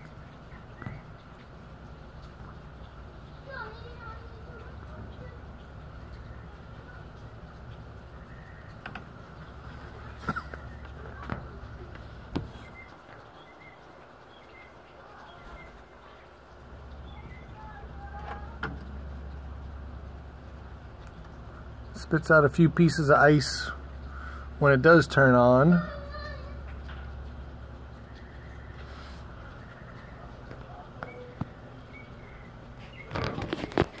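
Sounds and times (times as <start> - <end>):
ice machine humming: 0.0 - 34.0.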